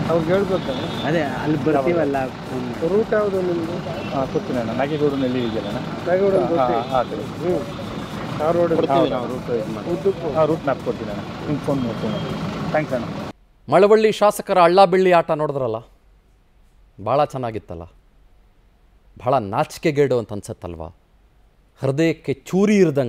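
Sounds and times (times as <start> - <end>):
man speaking clearly: 0.0 - 13.1, 21.8 - 23.0
men talking: 0.0 - 15.9, 21.8 - 23.0
steady background noise: 0.0 - 23.0.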